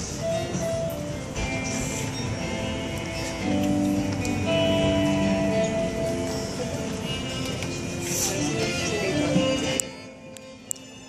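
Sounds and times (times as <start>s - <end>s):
guitar-led instrumental backing track: 0.0s - 11.0s.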